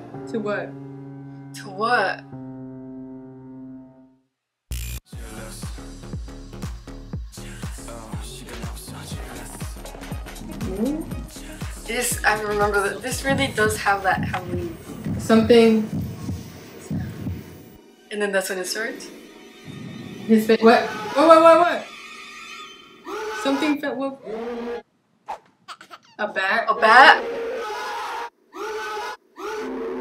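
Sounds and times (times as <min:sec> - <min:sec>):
heartbeat double thuds: 0:08.2 - 0:17.7
men screaming in fright: 0:20.8 - 0:21.4, 0:22.9 - 0:24.8, 0:26.8 - 0:30.0.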